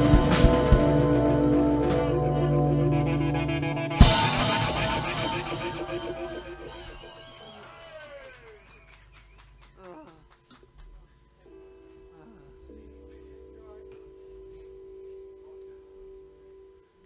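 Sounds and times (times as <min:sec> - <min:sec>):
held guitar chord: 0:00.0 - 0:07.9
bending guitar notes: 0:00.0 - 0:08.6.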